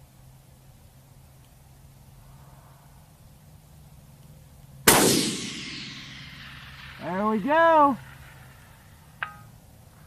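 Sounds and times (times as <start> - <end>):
rifle shot with echo: 4.9 - 9.0.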